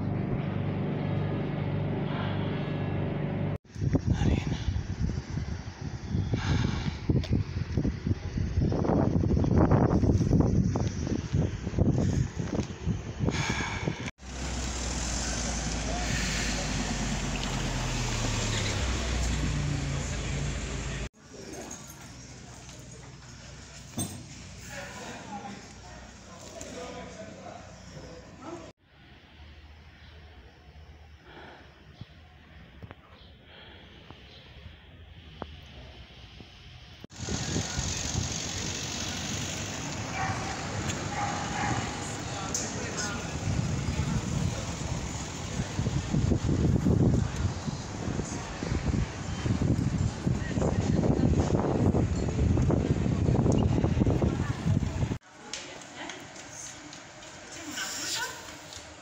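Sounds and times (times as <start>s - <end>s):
steady street noise: 0.0s - 59.0s
wind gusts on microphone: 3.7s - 19.9s, 37.1s - 55.2s
voices of passers-by: 10.6s - 28.7s, 37.1s - 59.0s.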